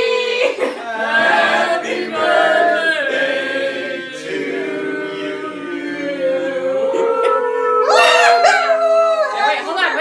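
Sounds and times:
group singing in unison: 0.0s - 8.2s.

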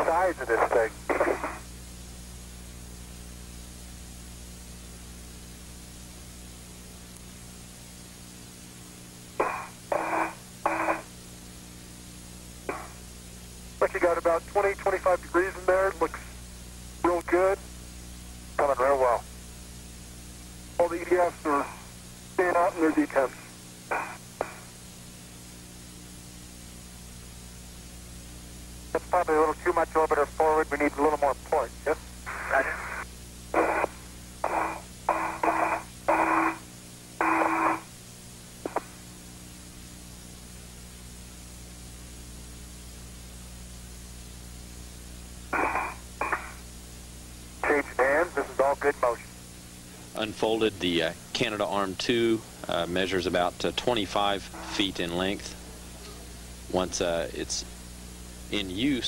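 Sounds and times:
voices over radio: 0.0s - 1.6s, 9.4s - 11.0s, 13.8s - 16.3s, 17.0s - 17.6s, 18.6s - 19.3s, 20.8s - 24.6s, 28.9s - 36.6s, 45.6s - 46.6s, 47.6s - 49.3s, 50.2s - 55.6s
constant hiss: 0.0s - 59.0s
steady low hum: 0.0s - 59.0s.

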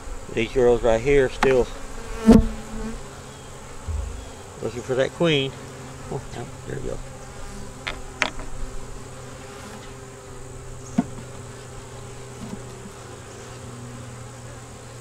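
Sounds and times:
honeybees buzzing: 0.0s - 15.0s.

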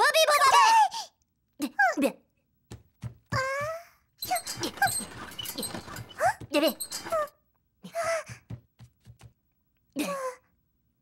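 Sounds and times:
squeaky cartoon voices chattering: 4.2s - 7.3s.

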